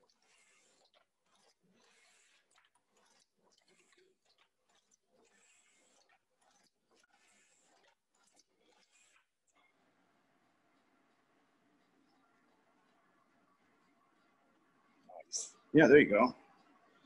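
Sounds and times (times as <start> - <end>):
faint crackling and rustling: 0.0 - 17.0.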